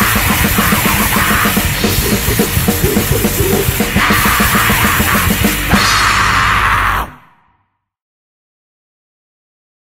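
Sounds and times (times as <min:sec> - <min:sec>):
punk band closing chord: 0:00.0 - 0:06.5.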